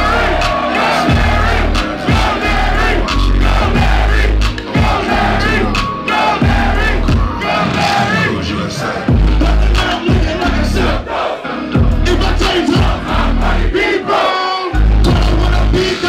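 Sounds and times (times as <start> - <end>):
heavy repeating bass: 0.0 - 8.4, 9.0 - 11.0, 11.8 - 13.8, 14.8 - 16.0
crowd shouting along: 0.0 - 9.4, 12.6 - 14.8
hip hop track over club speakers: 0.0 - 16.0.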